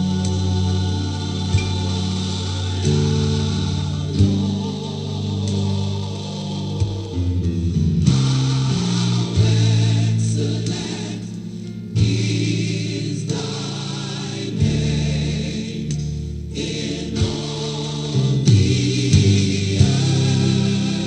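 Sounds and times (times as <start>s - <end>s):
gospel choir singing: 0.0s - 21.0s.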